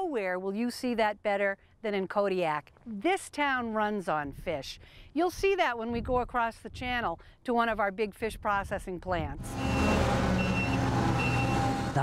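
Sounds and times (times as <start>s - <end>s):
forklift engine running: 9.4s - 12.0s
reversing alarm beeping: 9.5s - 12.0s.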